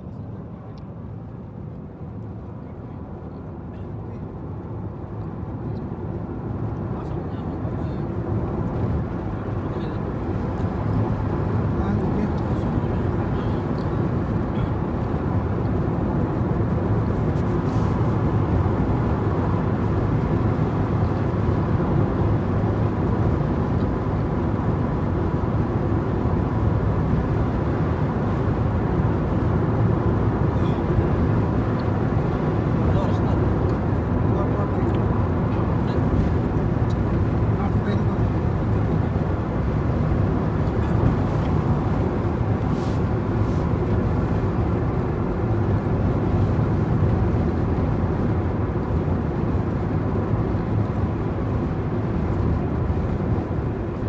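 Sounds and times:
car road and engine noise: 0:00.0 - 0:54.0.

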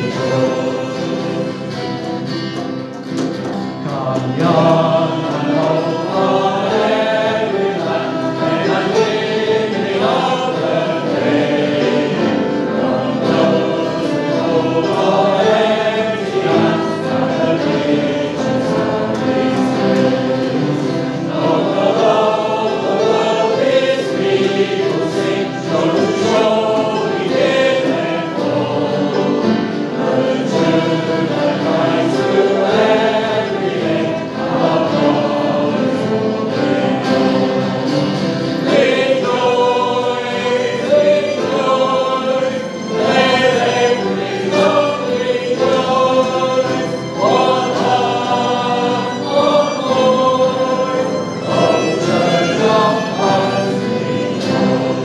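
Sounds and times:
congregation singing: 0:00.0 - 0:55.0
strummed acoustic guitar: 0:00.0 - 0:55.0
violin: 0:00.0 - 0:55.0
man singing: 0:03.8 - 0:06.9.

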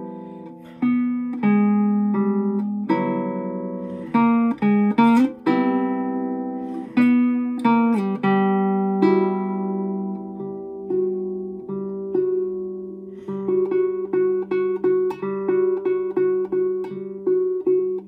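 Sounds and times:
classical guitar fingerpicking: 0:00.0 - 0:18.0.

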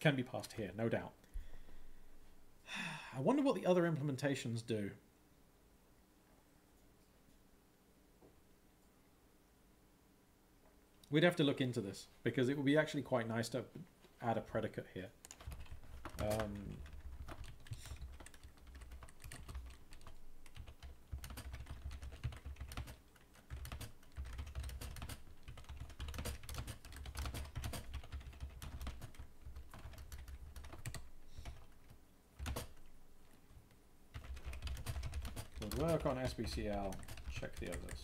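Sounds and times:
low steady hum: 0:00.0 - 0:38.0
typing on computer keyboard: 0:15.2 - 0:32.9, 0:34.1 - 0:38.0.

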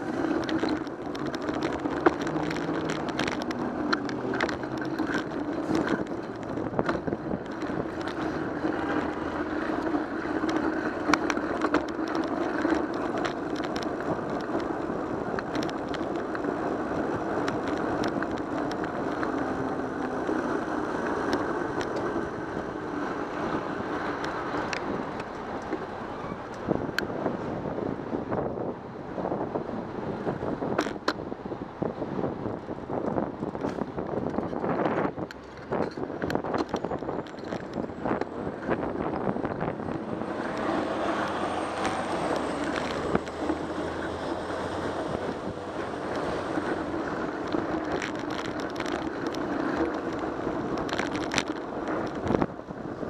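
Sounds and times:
sharp clicks and ticks: 0:00.0 - 0:27.1, 0:32.6 - 0:52.7
road and traffic noise: 0:00.0 - 0:53.0
wind buffeting microphone: 0:00.0 - 0:53.0.

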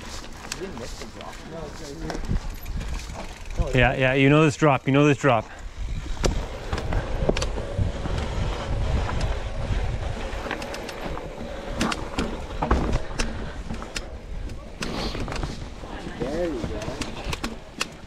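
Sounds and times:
bike clicking and clattering: 0:00.0 - 0:18.0.

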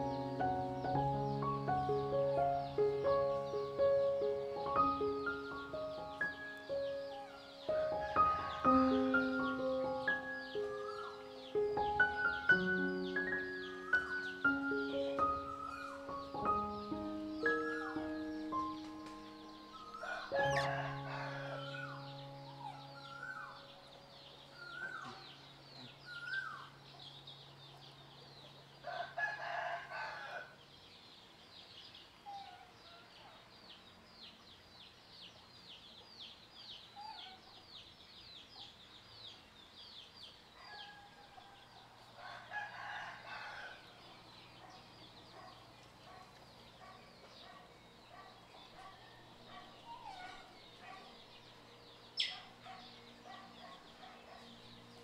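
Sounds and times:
rooster crowing: 0:07.2 - 0:09.5, 0:19.7 - 0:23.6, 0:28.8 - 0:30.6, 0:40.8 - 0:44.0.

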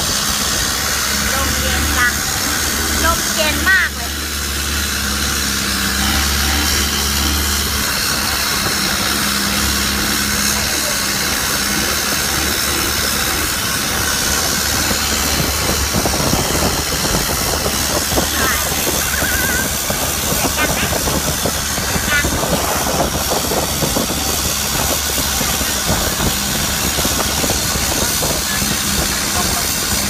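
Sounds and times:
boat engine droning: 0:00.0 - 0:30.0.

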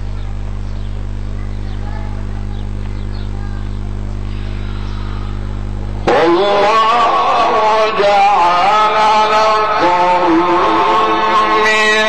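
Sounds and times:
low hum: 0:00.0 - 0:12.0
man chanting recitation: 0:06.0 - 0:12.0.

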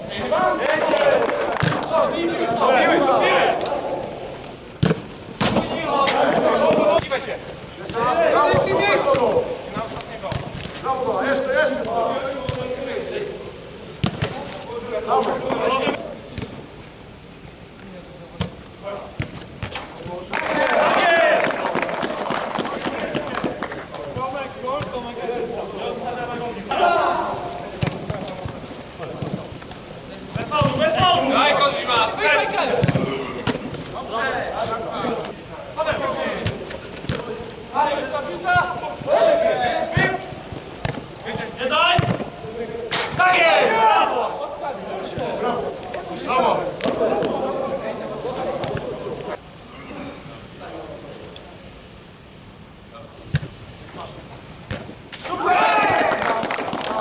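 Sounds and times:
players shouting: 0:00.0 - 0:04.7, 0:05.4 - 0:16.2, 0:20.0 - 0:29.6, 0:30.2 - 0:49.4, 0:55.1 - 0:57.0
ball kick thuds: 0:04.8 - 0:05.8, 0:06.6 - 0:10.7, 0:14.0 - 0:14.4, 0:30.3 - 0:31.2, 0:32.7 - 0:33.8, 0:40.8 - 0:41.1, 0:42.0 - 0:42.3, 0:54.6 - 0:55.0
football being kicked: 0:14.0 - 0:14.4.

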